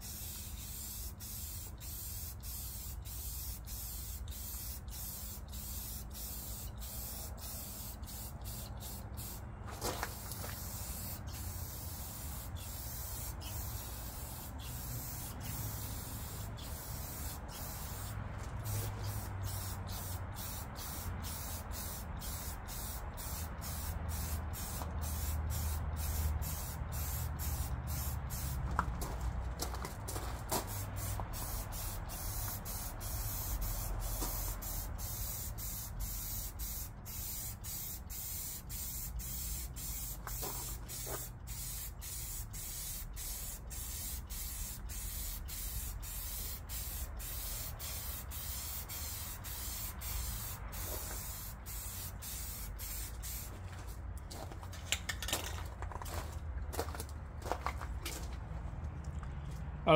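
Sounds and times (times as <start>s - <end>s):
aerosol spray can hissing: 0.0s - 9.4s, 10.0s - 28.7s, 30.6s - 53.5s.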